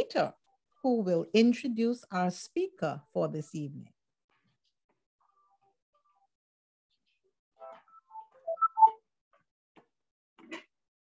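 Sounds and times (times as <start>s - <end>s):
short tones at different pitches: 7.9s - 9.0s.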